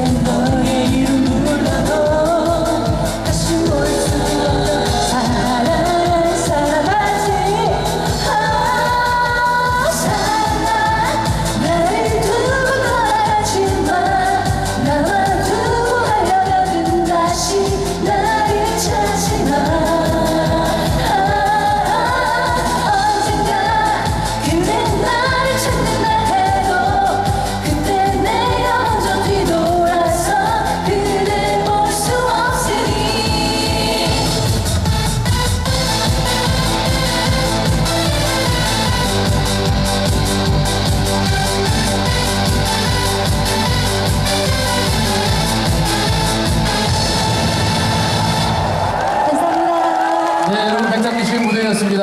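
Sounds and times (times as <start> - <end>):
woman singing into microphone: 0.0 - 34.9
dance beat backing track: 0.0 - 49.3.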